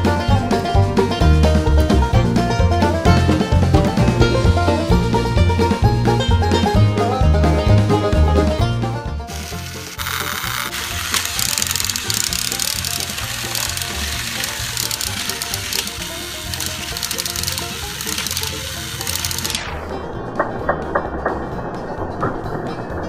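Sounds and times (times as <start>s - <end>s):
toy train motors whirring: 9.3s - 19.7s
sharp plastic clicks: 9.4s - 19.7s.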